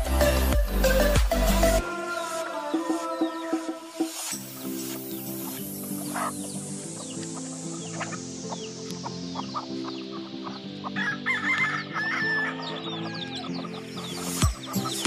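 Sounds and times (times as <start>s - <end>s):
music with sustained chords: 0.0s - 15.0s
chickens clucking: 2.1s - 15.0s
rooster crowing: 11.0s - 13.6s.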